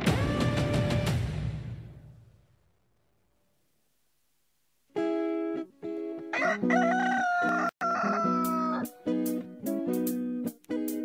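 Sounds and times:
strummed guitar chords: 0:00.0 - 0:02.0, 0:08.2 - 0:11.0
rooster crowing loudly: 0:06.3 - 0:08.9.

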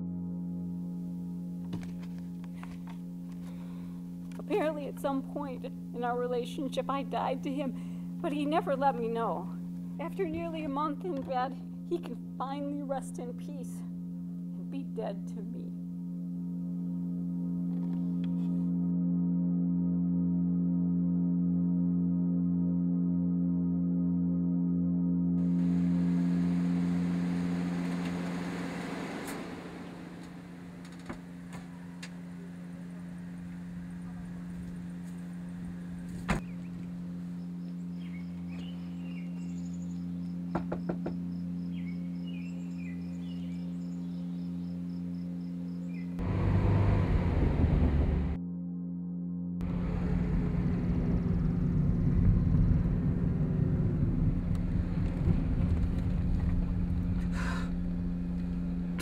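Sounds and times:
steady low hum: 0:00.0 - 0:59.0
tyre and engine noise: 0:25.4 - 0:37.1, 0:46.2 - 0:48.4, 0:49.6 - 0:59.0
car rolling on concrete: 0:25.5 - 0:36.4, 0:49.6 - 0:59.0.

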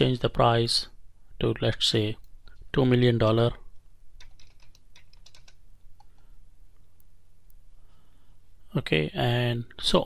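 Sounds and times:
keyboard key clicks: 0:04.2 - 0:06.2.

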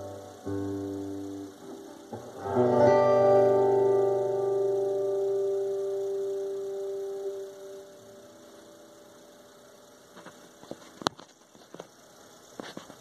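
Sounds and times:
acoustic guitar chord ringing: 0:00.0 - 0:09.8.

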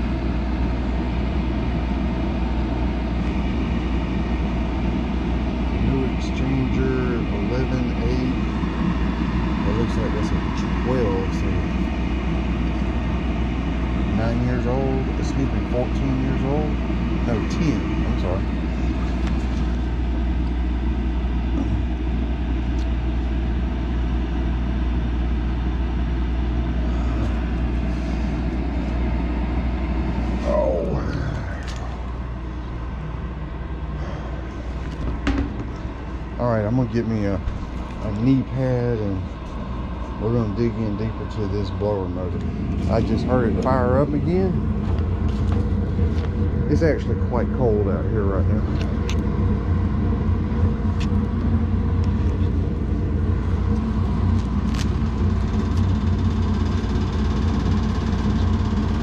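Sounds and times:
low mechanical hum: 0:00.0 - 0:59.0.

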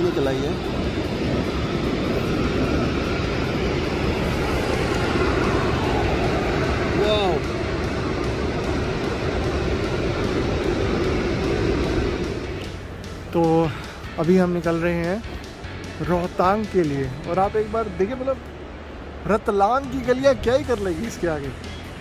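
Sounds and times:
traffic and street noise: 0:00.0 - 0:22.0.

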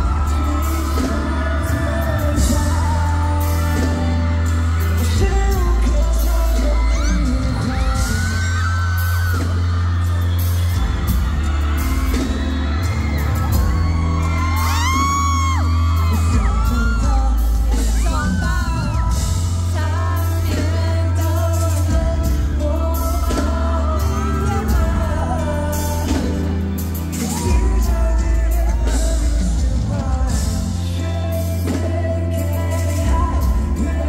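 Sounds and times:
audience screaming: 0:00.0 - 0:34.0
person singing: 0:00.0 - 0:34.0
pop song with heavy bass: 0:00.0 - 0:34.0.

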